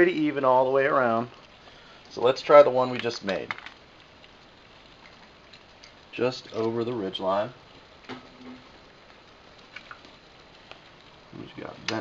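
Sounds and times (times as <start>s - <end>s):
liquid trickling into can: 9.7s - 10.2s.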